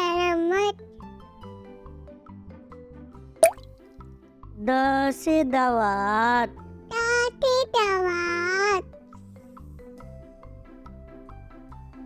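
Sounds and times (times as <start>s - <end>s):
soft children's background music: 0.0s - 12.0s
water-drop bloop effect: 3.4s - 3.7s.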